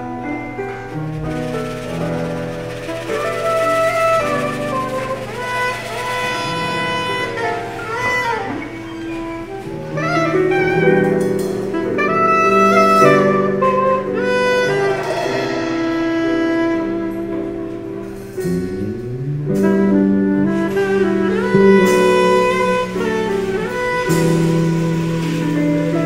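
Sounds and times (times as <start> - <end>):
keyboard accompaniment: 0.0 - 26.0
soprano saxophone melody: 0.0 - 26.0
electric bass: 14.2 - 26.0.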